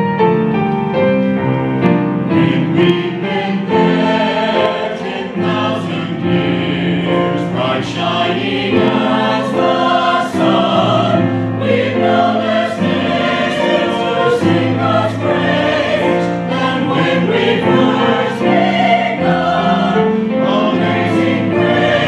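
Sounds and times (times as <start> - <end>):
choir singing: 2.0 - 22.0.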